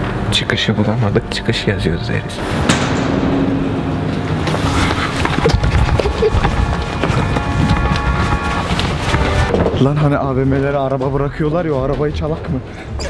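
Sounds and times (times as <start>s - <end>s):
background music with held notes: 0.0s - 2.9s.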